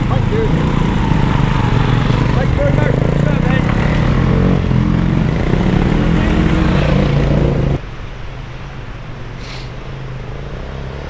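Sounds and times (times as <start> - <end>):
distant engine: 0.0 - 7.8
motorcycle engine revving: 0.0 - 7.8.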